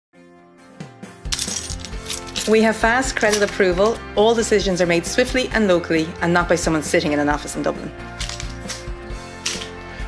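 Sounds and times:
background music with beat: 0:00.5 - 0:04.7.

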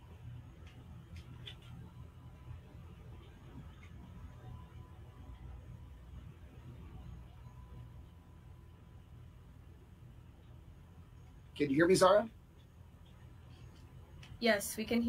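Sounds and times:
faint low hum and hiss: 0:00.0 - 0:15.0
thin steady tone: 0:00.0 - 0:15.0.

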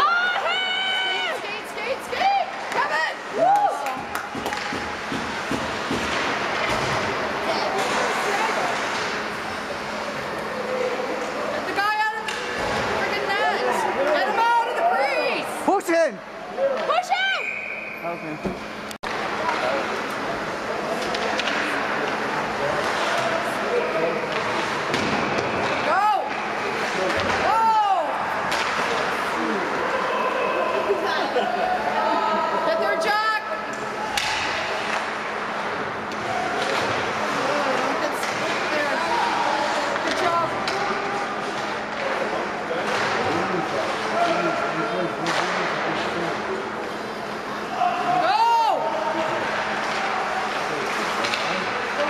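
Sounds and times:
sticks and puck knocking boards: 0:03.9 - 0:07.0.

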